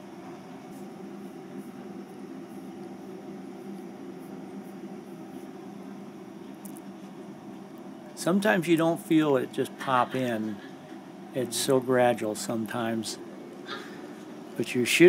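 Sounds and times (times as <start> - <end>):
low room hum: 0.0 - 15.0.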